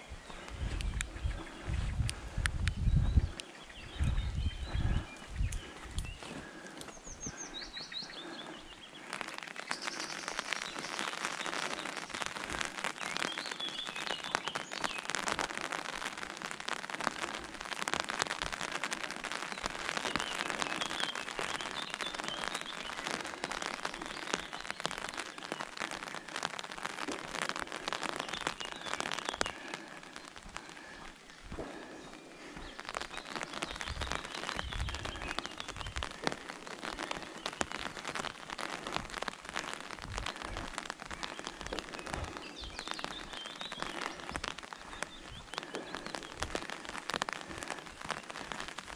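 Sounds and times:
birds chirping: 0.0 - 48.9
rain pattering on an umbrella: 0.0 - 48.9.

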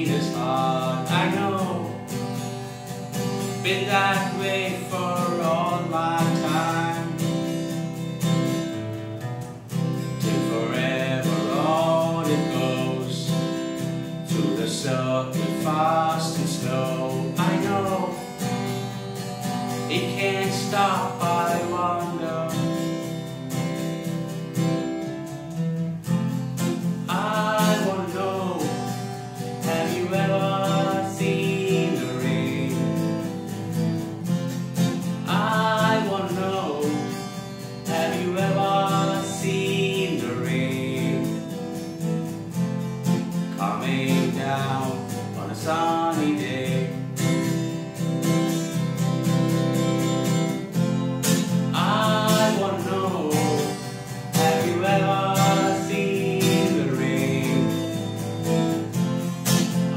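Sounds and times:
man singing: 0.0 - 2.3, 3.3 - 8.0, 10.2 - 18.7, 19.7 - 23.3, 26.7 - 41.8, 43.2 - 47.5, 51.3 - 58.9
acoustic guitar strumming: 0.0 - 59.9.

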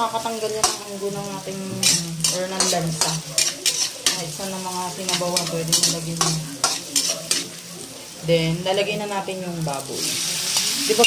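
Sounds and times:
food sizzling in oil: 0.0 - 11.0
metal spatula scraping a wok: 0.5 - 8.2.

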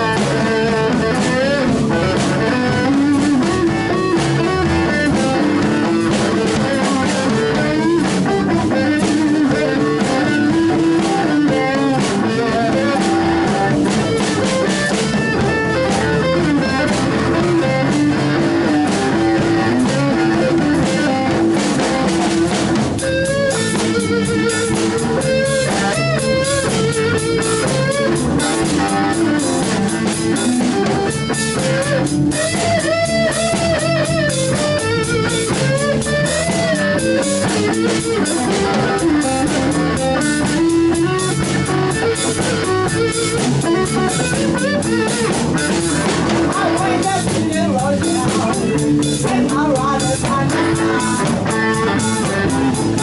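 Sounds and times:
drums and cymbals: 0.0 - 53.0
electric guitar: 0.0 - 53.0
small live band playing: 0.0 - 53.0
woman singing: 46.5 - 53.0.

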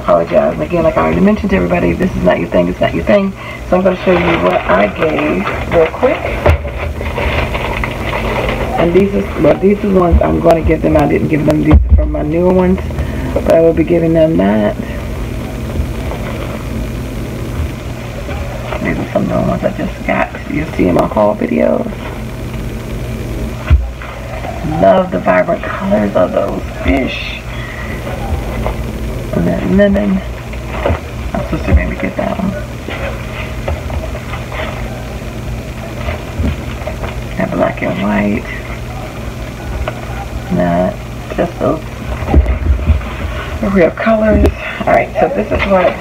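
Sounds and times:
steady low hum: 0.0 - 46.0
paper napkins rustling: 2.8 - 11.6, 27.8 - 38.0.

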